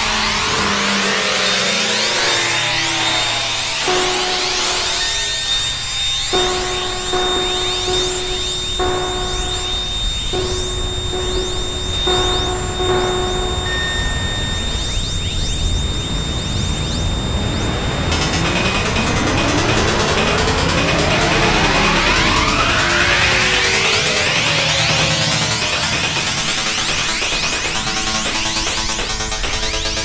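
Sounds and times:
synthesizer pitch glides: 0:02.1 - 0:28.7
thin high whistle: 0:03.8 - 0:16.1
synthesizer tone breaking off: 0:03.8 - 0:26.8.

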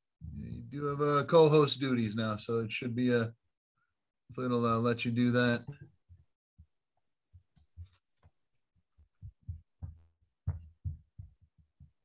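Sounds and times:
soft low thumps: 0:09.0 - 0:12.0.

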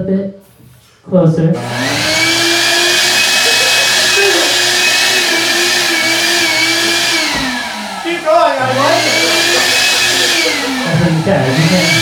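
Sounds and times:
vacuum cleaner motor whine: 0:01.6 - 0:12.0.

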